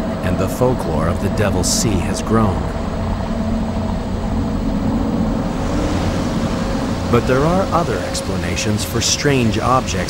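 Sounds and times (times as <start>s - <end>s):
deep rumbling drone with hiss: 0.0s - 10.0s.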